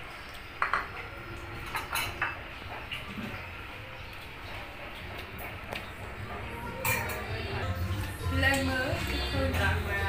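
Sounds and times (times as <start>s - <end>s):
dishes clinking: 0.6s - 3.5s, 4.9s - 10.0s.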